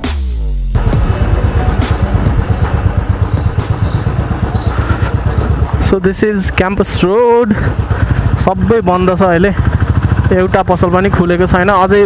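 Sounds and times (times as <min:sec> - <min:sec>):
background music: 0:00.0 - 0:07.2
motorcycle engine running: 0:00.7 - 0:12.0.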